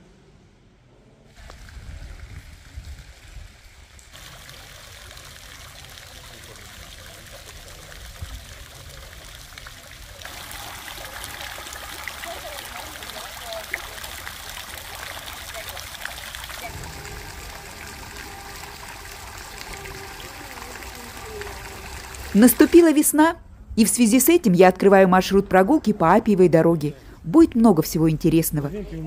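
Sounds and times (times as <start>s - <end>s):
fountain splashing into basin: 1.3s - 23.2s
low rumble: 16.6s - 22.4s.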